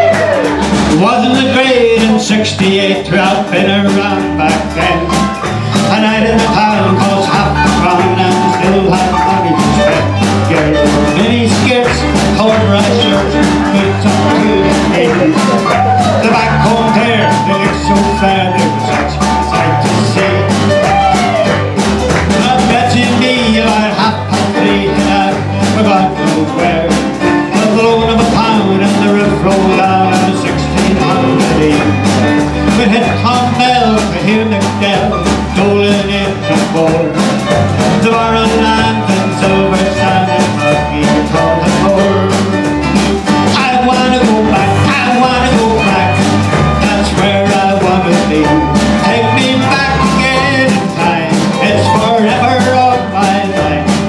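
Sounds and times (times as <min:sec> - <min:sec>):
acoustic guitar: 0:00.0 - 0:54.0
drum kit: 0:00.0 - 0:54.0
electric bass: 0:00.0 - 0:54.0.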